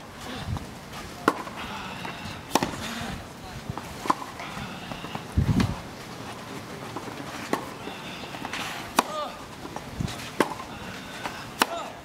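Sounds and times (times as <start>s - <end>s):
racquet hitting tennis ball: 1.2s - 2.9s, 4.0s - 4.4s, 8.4s - 12.0s.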